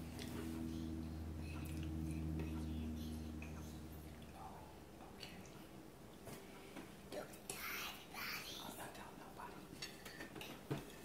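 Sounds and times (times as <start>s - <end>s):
faint whispering: 0.7s - 5.7s, 7.1s - 10.7s.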